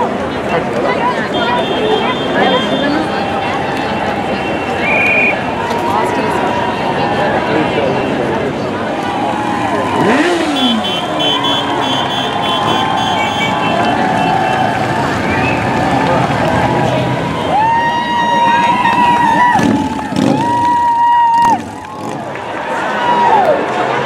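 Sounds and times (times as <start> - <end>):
crowd chatter and shouts: 0.0 - 24.0
motorcycles passing slowly: 0.0 - 24.0.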